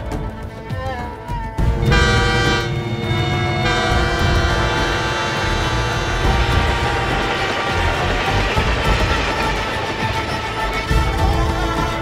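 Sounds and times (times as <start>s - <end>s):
train rumbling past: 1.6s - 12.0s
train horn: 1.8s - 10.6s.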